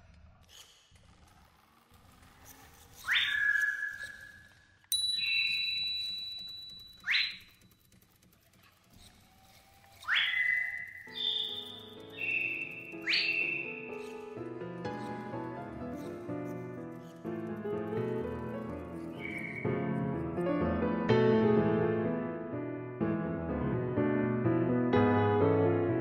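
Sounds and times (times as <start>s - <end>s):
upward sweeping whistles: 3.0s - 4.6s, 5.2s - 6.2s, 7.0s - 7.5s, 9.9s - 13.9s, 19.1s - 19.8s
steady whistle tone: 3.0s - 7.8s, 9.4s - 14.1s, 19.1s - 19.9s
piano-like music: 11.1s - 26.0s.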